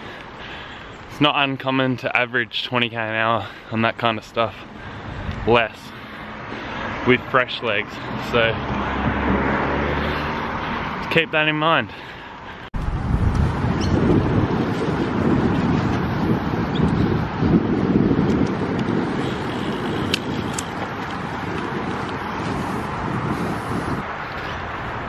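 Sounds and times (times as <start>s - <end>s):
wind rushing over microphone: 4.6s - 11.2s, 12.7s - 25.0s.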